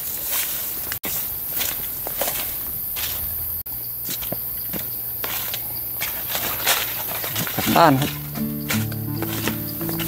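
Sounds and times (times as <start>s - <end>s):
footsteps through dry leaves: 0.0s - 10.0s.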